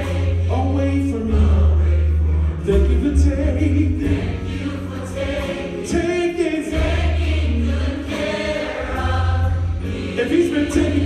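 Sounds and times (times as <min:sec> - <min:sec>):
deep steady bass line: 0:00.0 - 0:07.7
gospel choir singing: 0:00.0 - 0:11.0
live band playing: 0:00.0 - 0:11.0.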